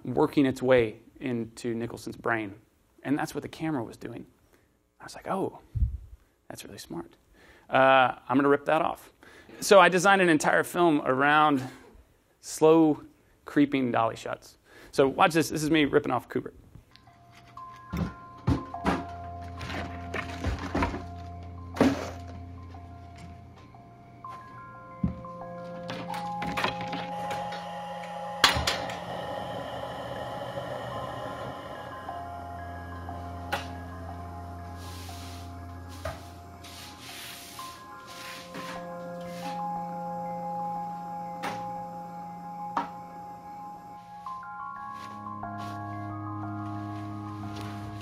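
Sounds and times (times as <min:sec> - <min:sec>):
bell-like sustained tones: 0:16.9 - 0:48.0
sparse music of ringing notes: 0:16.9 - 0:48.0
low hum: 0:19.0 - 0:37.0.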